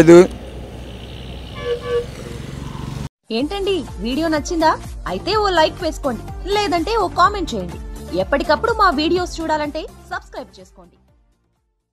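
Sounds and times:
vehicle rumble: 0.0s - 3.1s
car horn toot: 1.5s - 2.2s.

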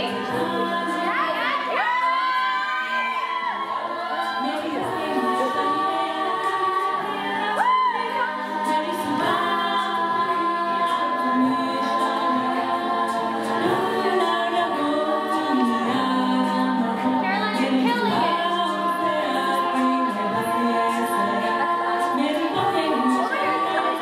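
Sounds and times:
women's a cappella group singing: 0.0s - 24.0s.

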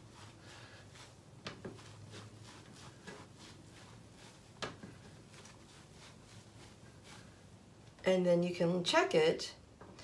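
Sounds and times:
damp sponge squishing: 0.0s - 7.9s.

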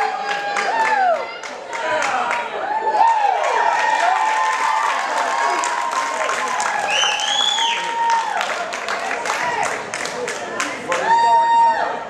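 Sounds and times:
scattered clapping: 0.0s - 11.2s
crowd cheering and yelling: 0.0s - 12.0s.

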